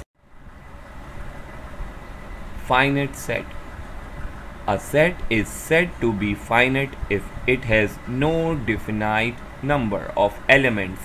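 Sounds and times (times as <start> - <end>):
low rumble background noise: 0.0 - 11.0.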